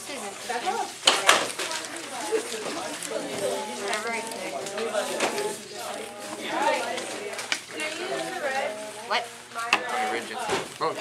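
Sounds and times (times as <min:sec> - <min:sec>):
students talking: 0:00.0 - 0:11.0.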